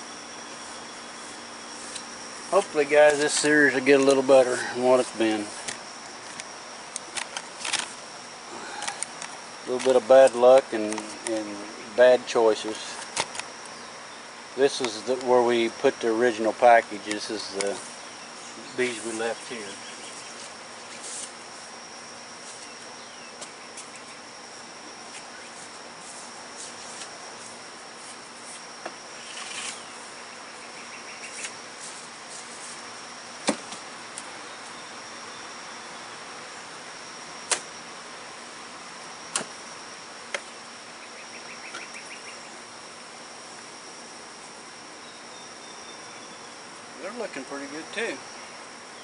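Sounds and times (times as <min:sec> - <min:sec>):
honey bees buzzing: 0:00.0 - 0:49.0.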